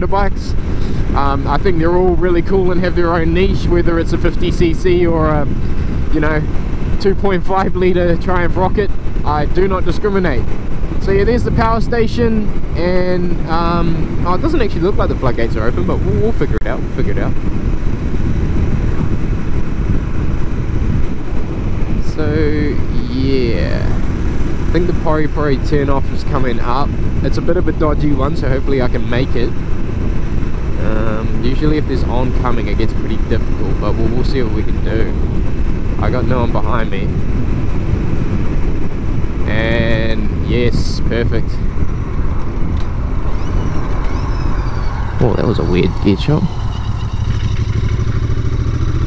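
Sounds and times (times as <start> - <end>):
motorcycle engine cruising: 0.0 - 49.0
wind rumble on microphone: 0.0 - 49.0.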